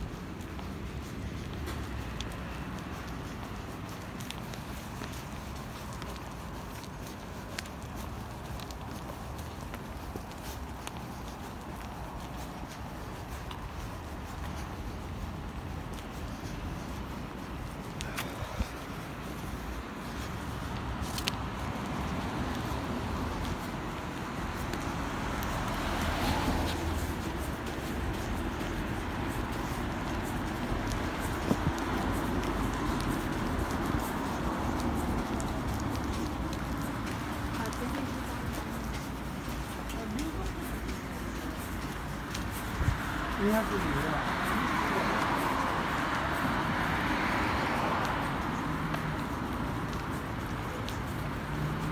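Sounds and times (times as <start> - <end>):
road traffic noise: 0.0 - 51.9
vehicle passing: 12.5 - 51.9.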